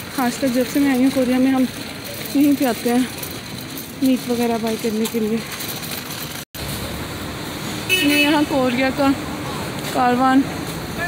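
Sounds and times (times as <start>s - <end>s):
hum of traffic: 0.0s - 11.0s.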